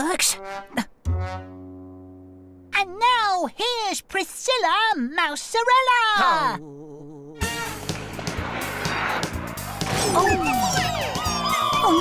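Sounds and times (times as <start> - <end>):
upbeat cartoon music: 0.2 - 2.7, 7.4 - 12.0
roller skate wheels rolling: 7.7 - 11.8.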